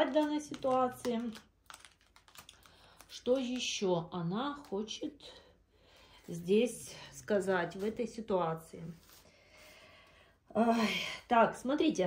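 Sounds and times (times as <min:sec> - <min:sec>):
cards clicking and snapping: 0:00.0 - 0:03.9
person speaking: 0:00.0 - 0:05.2, 0:06.2 - 0:09.1.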